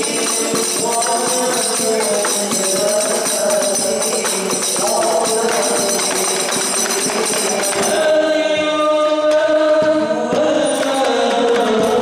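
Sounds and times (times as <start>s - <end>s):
hand-struck frame drums: 0.0s - 12.0s
men singing: 0.0s - 12.0s.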